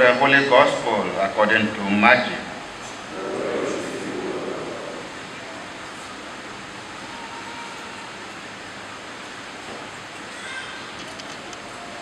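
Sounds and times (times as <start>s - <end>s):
room noise hiss: 0.0s - 12.0s
murmur of voices: 2.9s - 7.8s.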